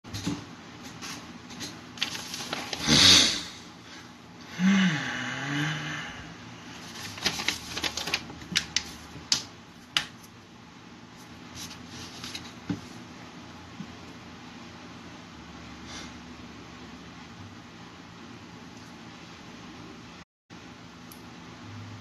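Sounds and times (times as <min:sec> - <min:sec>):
man humming low: 0:04.5 - 0:06.4.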